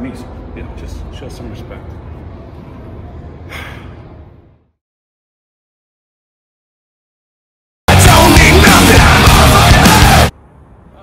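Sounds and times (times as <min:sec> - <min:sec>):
short sharp breath: 0:03.4 - 0:04.2.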